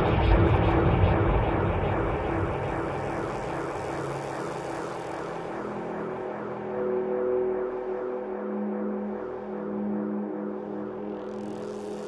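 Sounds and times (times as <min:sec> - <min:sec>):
rumbling drone with low hum: 0:00.0 - 0:07.9.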